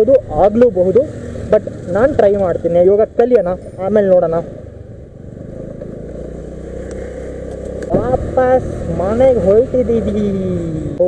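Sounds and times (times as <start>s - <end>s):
road and wind noise: 0.0s - 11.0s
scooter engine running: 0.0s - 11.0s.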